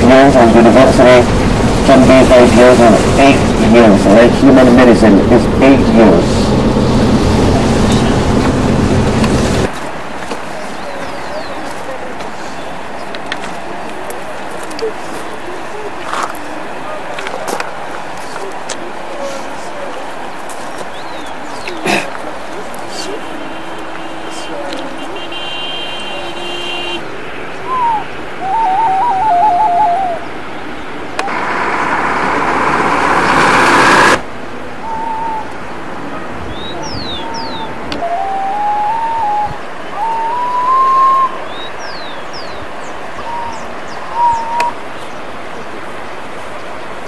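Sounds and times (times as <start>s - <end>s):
rush of noise: 0.0s - 25.1s, 27.0s - 47.0s
steady hiss: 0.0s - 26.0s
birds whistling and chirping: 10.7s - 11.7s, 20.9s - 21.8s, 27.6s - 30.4s, 34.8s - 35.6s, 36.5s - 45.2s.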